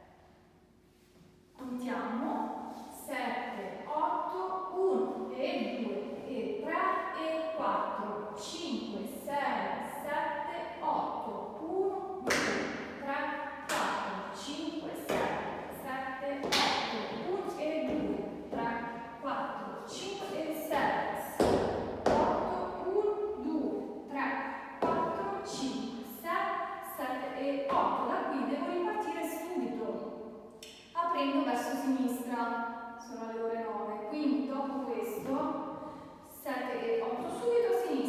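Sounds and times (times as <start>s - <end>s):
person speaking: 1.6s - 30.0s.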